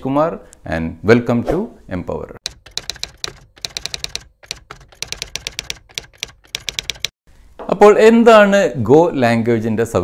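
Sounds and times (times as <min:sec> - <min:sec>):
keystroke clicks: 0:02.4 - 0:07.2.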